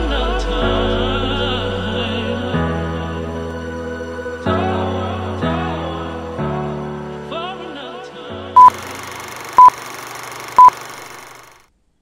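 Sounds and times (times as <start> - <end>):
short high beeps: 8.6 - 11.5.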